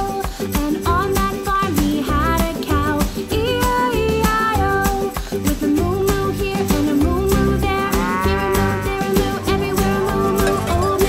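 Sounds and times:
strummed guitar: 0.0s - 11.0s
upbeat children's song music: 0.0s - 11.0s
cow mooing: 7.8s - 10.9s.

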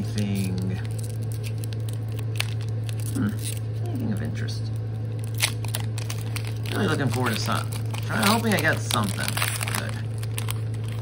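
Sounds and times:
foil wrapper crinkling and tearing: 0.0s - 11.0s
steady low hum: 0.0s - 11.0s.

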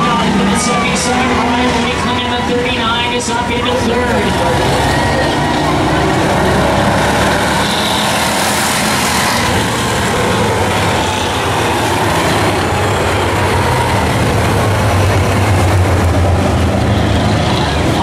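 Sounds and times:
stock car engines racing: 0.0s - 18.0s.

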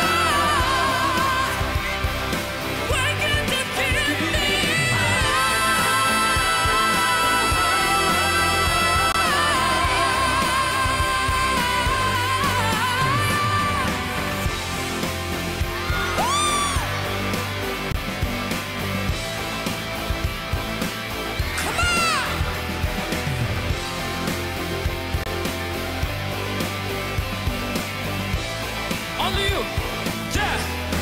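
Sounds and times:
rock band playing: 0.0s - 31.0s.

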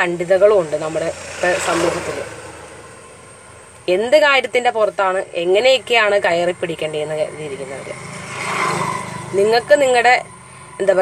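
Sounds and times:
woman speaking: 0.0s - 2.4s, 3.9s - 8.0s, 9.2s - 11.0s
passing vehicle noise: 0.0s - 11.0s.

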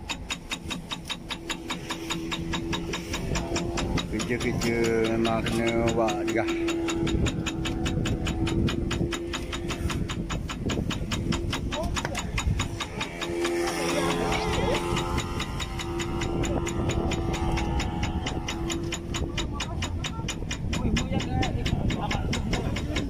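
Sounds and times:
boat engine idling: 0.0s - 23.0s.

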